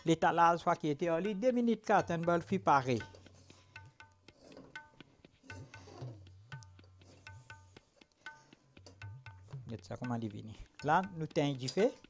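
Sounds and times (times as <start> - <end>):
tabla music: 0.0 - 12.0.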